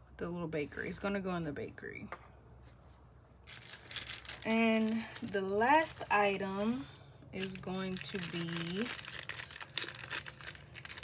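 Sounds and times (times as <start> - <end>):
plastic bag crinkling: 3.4 - 6.2, 7.4 - 11.0.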